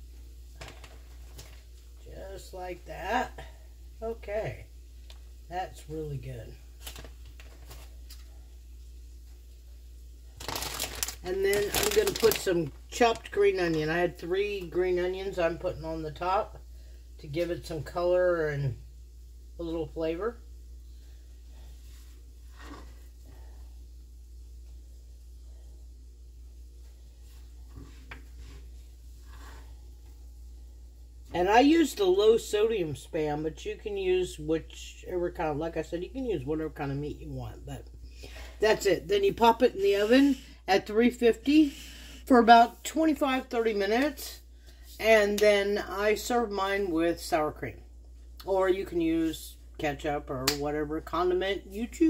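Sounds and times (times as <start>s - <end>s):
low steady hum: 0.0s - 52.0s
plastic bag crinkling: 6.8s - 8.2s, 10.3s - 13.8s.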